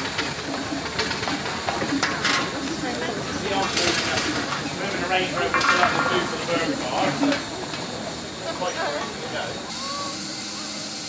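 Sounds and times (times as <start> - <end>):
steam hiss: 0.0 - 11.0.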